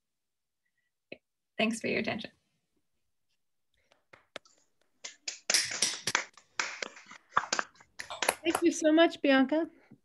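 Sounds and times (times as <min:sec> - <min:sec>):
people clapping: 0:05.0 - 0:08.8.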